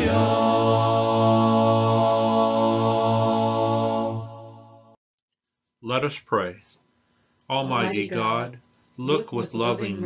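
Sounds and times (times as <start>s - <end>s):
voices holding a hymn chord: 0.0s - 4.6s, 7.6s - 10.0s.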